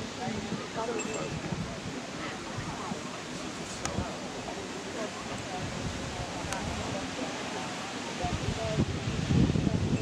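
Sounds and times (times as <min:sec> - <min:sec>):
people talking: 0:00.0 - 0:10.0
steady outdoor hiss: 0:00.0 - 0:10.0.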